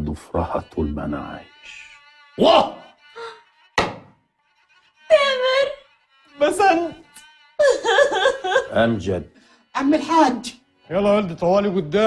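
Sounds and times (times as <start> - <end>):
faint background music: 0.0 - 12.0
sharp thump: 3.8 - 4.2.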